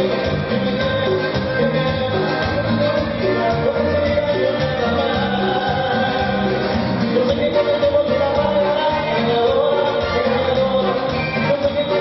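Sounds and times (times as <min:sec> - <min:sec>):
amplified guitar: 0:00.0 - 0:12.0
held singing voices: 0:00.0 - 0:12.0
keyboard: 0:00.0 - 0:12.0.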